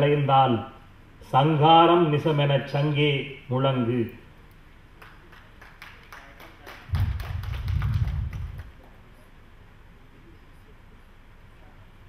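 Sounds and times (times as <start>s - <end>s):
loud low thuds and rumble: 6.9s - 8.8s.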